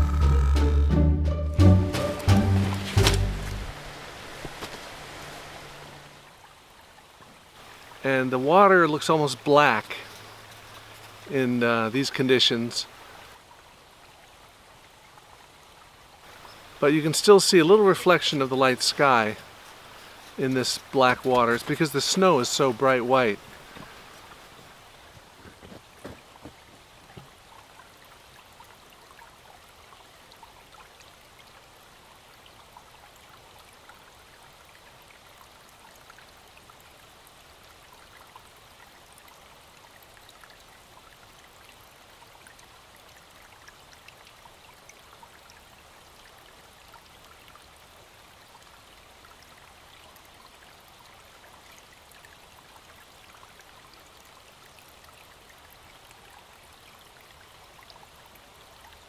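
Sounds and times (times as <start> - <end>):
forest stream rushing: 0.0 - 59.0.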